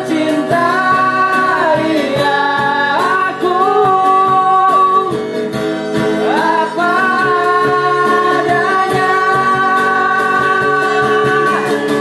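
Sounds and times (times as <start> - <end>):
man singing: 0.0 - 5.6, 6.2 - 12.0
strummed acoustic guitar: 0.0 - 12.0.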